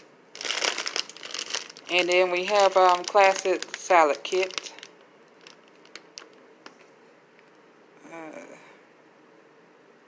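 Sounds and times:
plastic bag crinkling: 0.3s - 6.8s.

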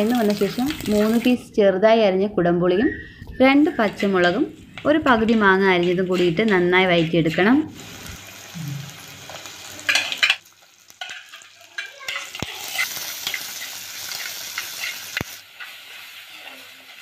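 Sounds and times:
food sizzling in oil: 0.0s - 1.5s, 3.5s - 17.0s.

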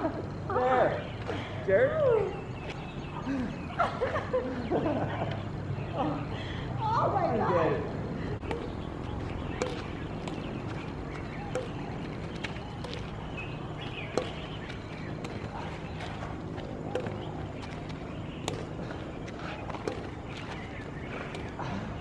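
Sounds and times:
badminton rackets striking shuttlecock: 8.4s - 18.8s, 19.7s - 20.7s.

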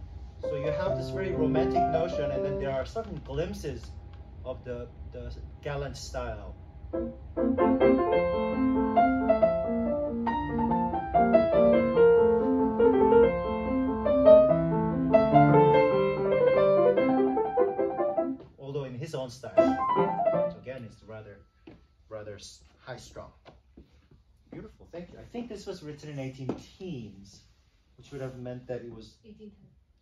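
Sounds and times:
classical piano passage: 0.4s - 3.0s, 7.0s - 18.4s, 19.6s - 20.6s
person talking: 0.4s - 3.8s, 19.5s - 21.0s.

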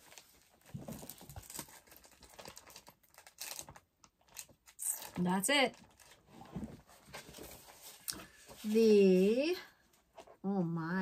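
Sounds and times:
paper and plastic sleeve rustling: 0.0s - 9.6s.

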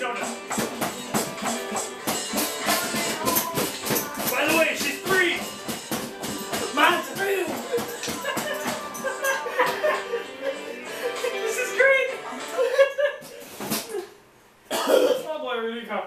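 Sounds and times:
drum kit playing busy pattern: 0.0s - 12.7s
person singing over beat: 0.2s - 11.4s.

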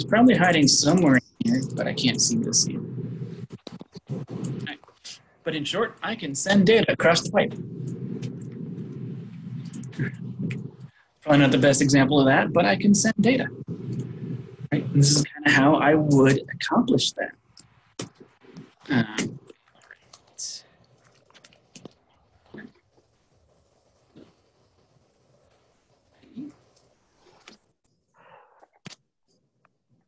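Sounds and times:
person speaking quietly: 0.0s - 4.8s, 5.5s - 7.6s, 11.3s - 13.6s, 14.7s - 17.3s, 18.9s - 19.4s, 20.4s - 20.6s
steady low hum: 0.0s - 27.5s.

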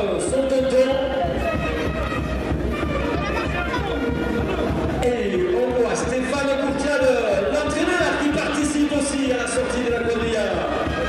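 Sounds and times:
crowd chatter: 0.0s - 11.0s
music playing: 0.0s - 11.0s.

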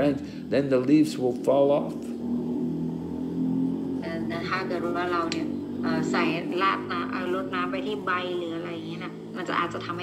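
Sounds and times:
low hum of held tones: 0.0s - 10.0s.

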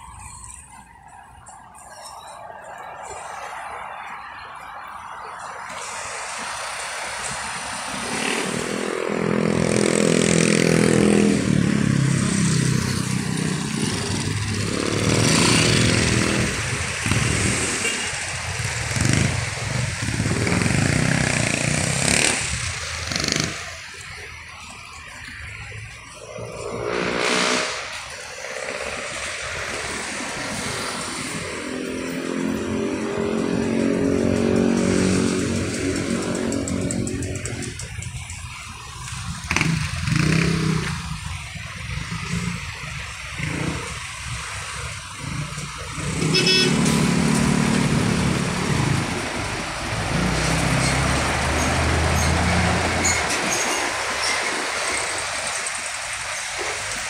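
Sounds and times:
passing vehicle engines: 0.0s - 57.0s.

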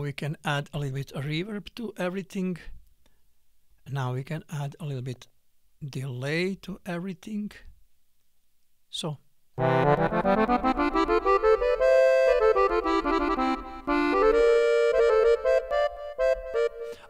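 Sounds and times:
sampled accordion running up and down: 9.6s - 17.0s.

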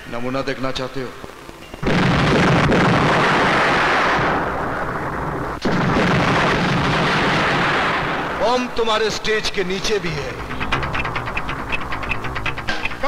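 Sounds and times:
bomb blasts: 1.8s - 9.0s, 10.0s - 13.0s.

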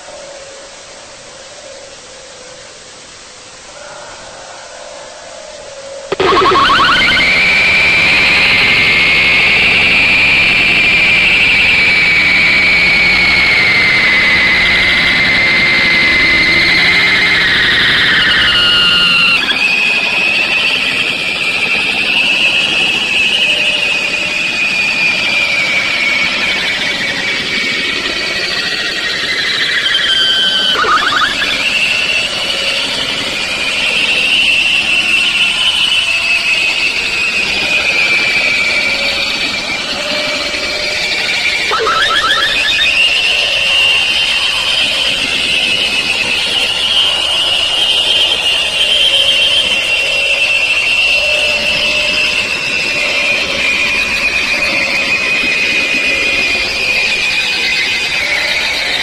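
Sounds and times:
harsh distorted screeching noise: 41.4s - 44.0s.

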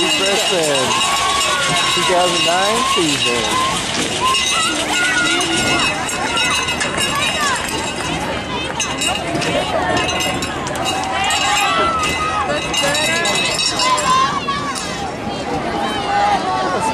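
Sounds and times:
babble of overlapping voices: 0.0s - 16.9s.

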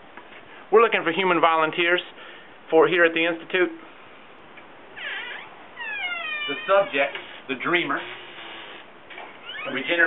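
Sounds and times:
pet animal crying: 5.0s - 7.0s.

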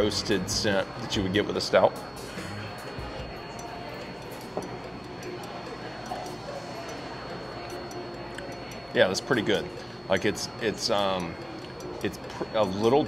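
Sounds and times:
distant voices: 0.0s - 13.0s
faint music: 0.0s - 13.0s
faint steady high tone: 3.0s - 13.0s.

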